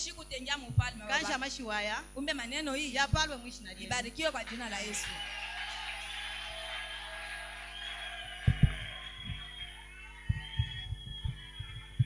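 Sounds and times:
irregular low thumps: 0.6s - 1.2s, 3.0s - 4.0s, 8.4s - 9.5s, 10.3s - 12.0s.

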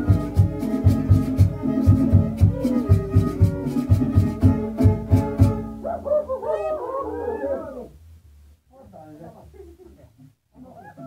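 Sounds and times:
voices calling out in gliding cries: 5.8s - 7.9s.

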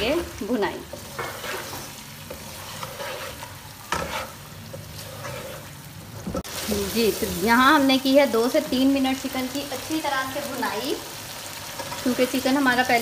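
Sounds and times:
wooden spatula stirring: 0.0s - 6.5s
chicken sizzling in a pan: 0.0s - 13.0s.

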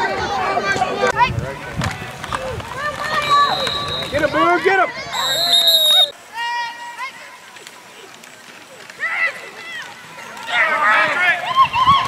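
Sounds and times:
referee's whistle blowing: 3.3s - 6.2s.

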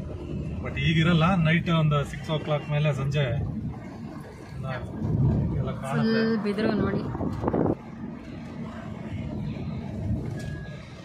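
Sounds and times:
vehicle rumble on dirt road: 0.0s - 11.0s.

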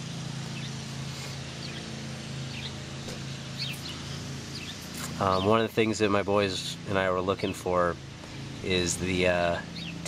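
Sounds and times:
low engine hum: 0.0s - 10.0s
bird chirps: 0.5s - 0.8s, 1.5s - 5.6s, 9.7s - 10.0s.

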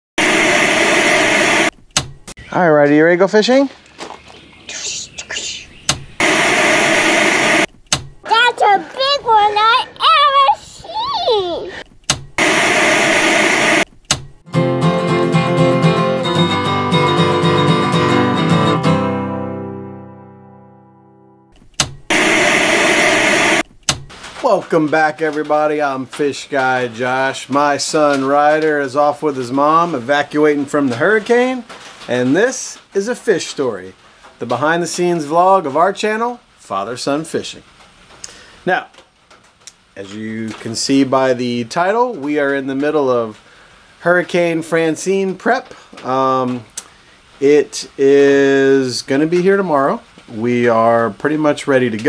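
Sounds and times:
acoustic guitar chords: 14.4s - 21.5s
television static hiss: 22.2s - 52.0s.

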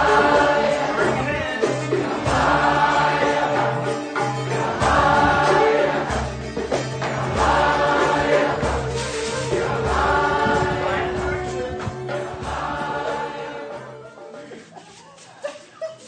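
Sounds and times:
low pulsing accompaniment: 0.0s - 14.1s
group of voices chanting: 4.6s - 6.3s.

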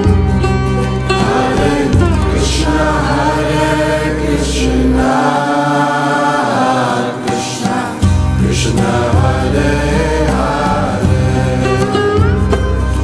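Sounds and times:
deep sustained drone: 0.0s - 6.5s
higher accompaniment: 0.0s - 13.0s
group of voices chanting: 1.2s - 12.1s.

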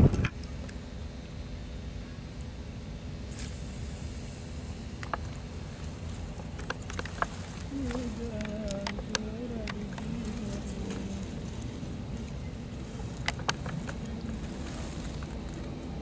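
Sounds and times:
wind buffeting microphone: 0.0s - 0.3s
faint wavering voice-like tone: 7.7s - 11.4s.

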